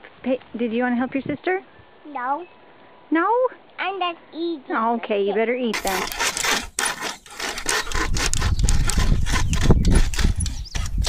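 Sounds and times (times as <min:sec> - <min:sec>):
hand saw rasping through log: 0:05.8 - 0:11.0.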